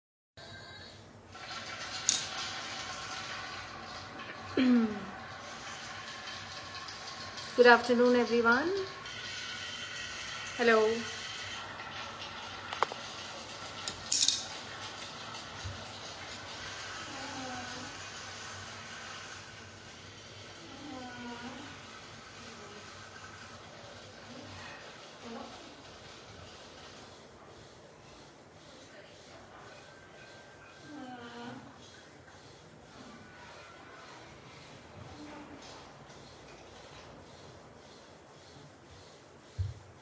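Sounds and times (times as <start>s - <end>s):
ceiling fan humming: 0.4s - 40.0s.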